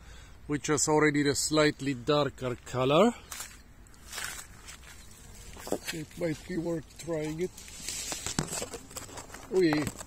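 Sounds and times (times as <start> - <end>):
leafy branches rustling: 3.2 - 10.0
branches clicking and snapping: 7.2 - 10.0.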